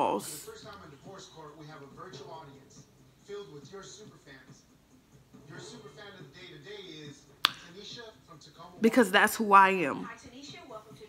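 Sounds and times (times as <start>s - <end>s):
sharp snap: 7.4s - 7.7s.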